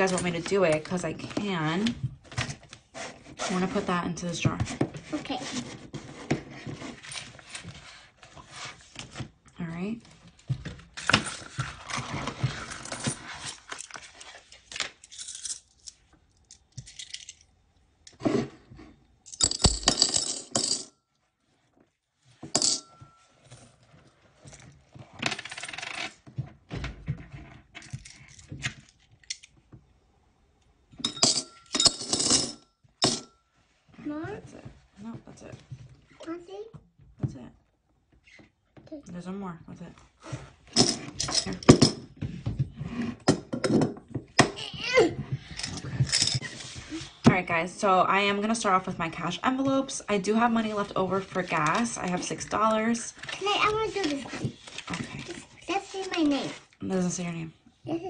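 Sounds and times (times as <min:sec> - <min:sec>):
coins clinking in glass jar: 0:19.3 - 0:21.0, 0:22.6 - 0:22.9, 0:31.0 - 0:33.4, 0:45.6 - 0:46.4.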